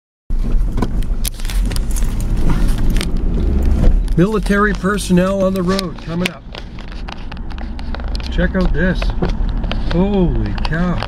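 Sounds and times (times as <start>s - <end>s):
engine and tyre rumble: 0.3s - 11.0s.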